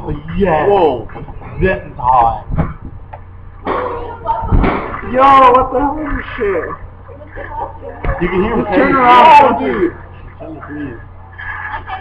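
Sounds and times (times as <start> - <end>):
steady low hum: 0.0 - 12.0
indistinct voices: 3.6 - 12.0.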